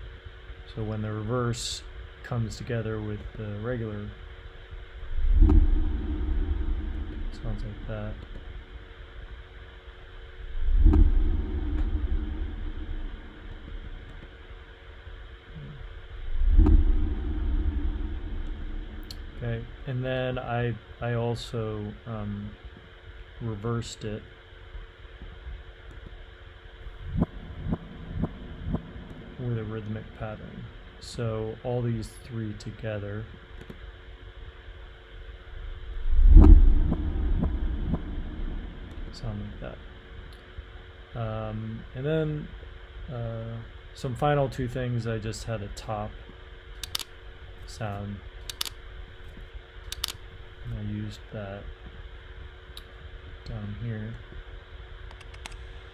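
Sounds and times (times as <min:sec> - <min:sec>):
steady low hum: 0:00.0 - 0:55.9
deep booming swells: 0:04.8 - 0:09.4, 0:10.1 - 0:14.3, 0:15.5 - 0:20.9, 0:26.8 - 0:31.0, 0:35.5 - 0:40.4.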